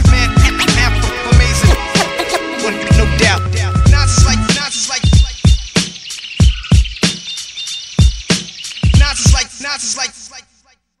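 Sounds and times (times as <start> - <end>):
turntable scratching vocal snippets: 0.0 - 7.0, 8.8 - 10.5
hip hop beat with kick drums: 0.0 - 10.0.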